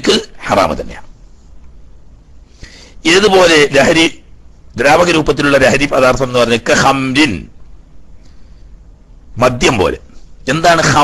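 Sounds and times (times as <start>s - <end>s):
man lecturing: 0.0s - 1.1s, 3.0s - 7.5s, 9.4s - 11.0s
faint low background hum: 0.0s - 11.0s.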